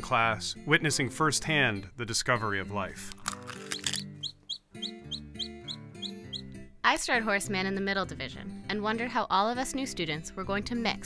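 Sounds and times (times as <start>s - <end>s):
baby chick peeping: 3.6s - 6.6s.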